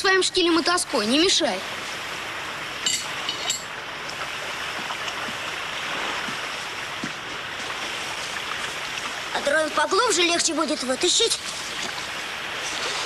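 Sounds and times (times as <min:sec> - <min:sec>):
water rushing: 0:00.0 - 0:13.0.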